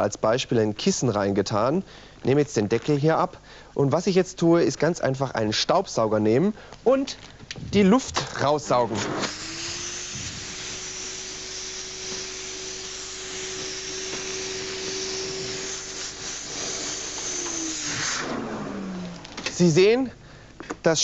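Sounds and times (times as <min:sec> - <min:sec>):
vacuum cleaner running: 0:07.5 - 0:19.4.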